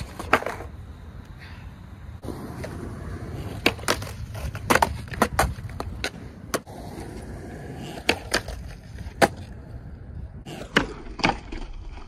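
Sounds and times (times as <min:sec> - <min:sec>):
skateboard clacking on ground: 0:00.0 - 0:00.8, 0:02.2 - 0:09.7, 0:10.4 - 0:12.0
skateboard wheels rolling on concrete: 0:00.0 - 0:12.0.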